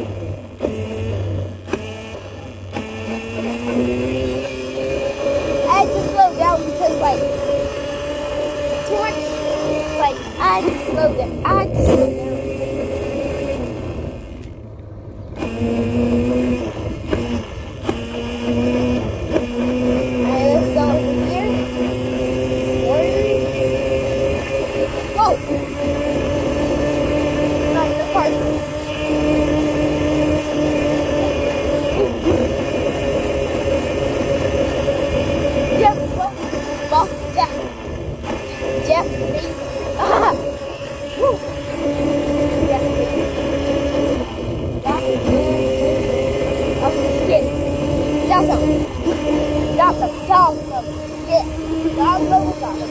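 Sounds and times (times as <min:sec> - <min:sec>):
small vehicle motor humming: 0:00.0 - 0:52.9.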